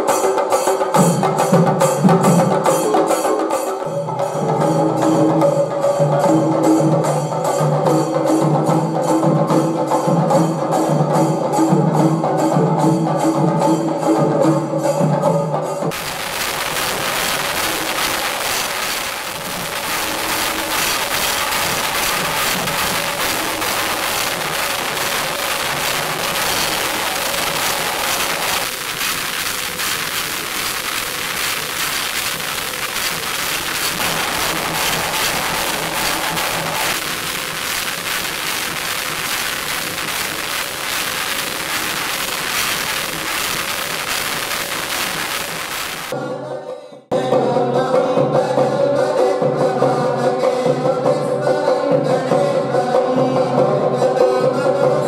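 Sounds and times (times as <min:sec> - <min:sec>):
drum ensemble playing: 0:15.9 - 0:44.6.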